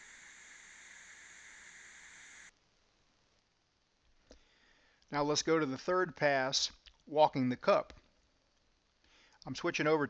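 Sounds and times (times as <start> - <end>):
welding arc hissing: 0.0 - 2.5.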